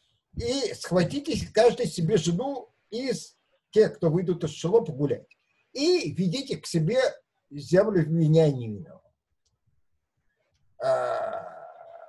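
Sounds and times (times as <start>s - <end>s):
man's drawn-out hesitation sound: 0.4s - 5.2s.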